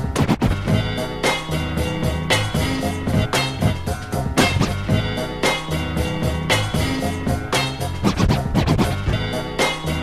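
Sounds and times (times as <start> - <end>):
record scratching: 0.0 - 0.8, 4.3 - 5.0, 7.8 - 9.4
funk breakbeat music: 0.0 - 10.0.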